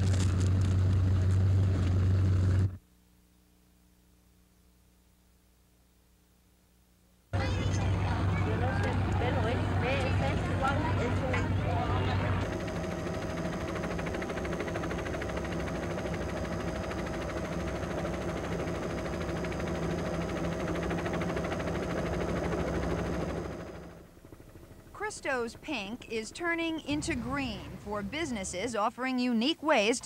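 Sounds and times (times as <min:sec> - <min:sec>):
low hum: 0:00.0 - 0:28.7
voices: 0:07.4 - 0:14.5, 0:25.0 - 0:30.0
helicopter engine and rotor: 0:07.4 - 0:28.6.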